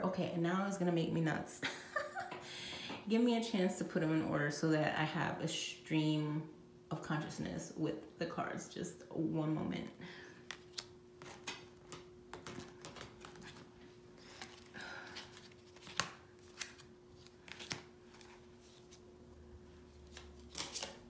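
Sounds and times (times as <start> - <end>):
cards sliding and tapping: 10.4 - 13.7.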